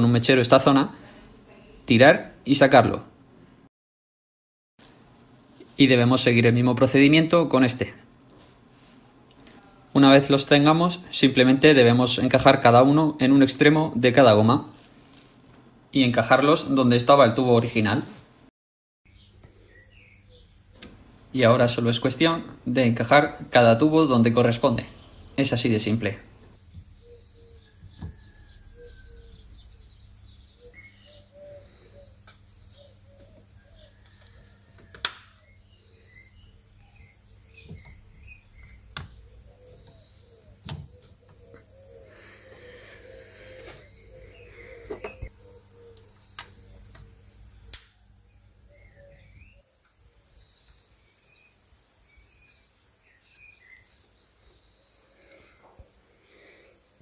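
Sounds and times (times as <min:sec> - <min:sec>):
birds chirping and singing: 0:19.1 - 0:57.0
sharp clicks: 0:47.7 - 0:48.0.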